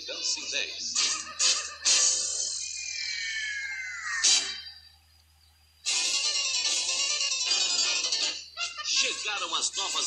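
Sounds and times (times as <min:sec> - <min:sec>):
descending pitched tone: 0:02.6 - 0:04.7.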